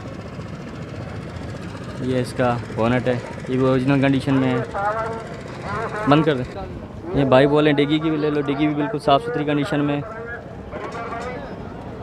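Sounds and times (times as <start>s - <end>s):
outdoor vehicle rumble: 0.0s - 8.5s.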